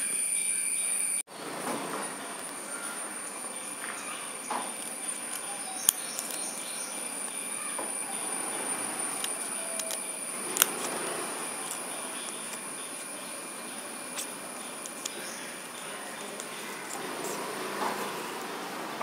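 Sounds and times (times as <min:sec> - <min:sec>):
thin high whine: 0:00.0 - 0:19.0
scissors snipping paper: 0:04.6 - 0:07.4, 0:09.1 - 0:13.3, 0:14.0 - 0:17.0.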